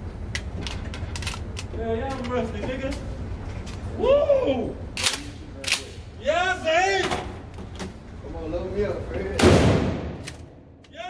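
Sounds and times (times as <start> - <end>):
shotgun blast with echo: 9.4 - 10.2
sharp gunshots: 9.4 - 10.4.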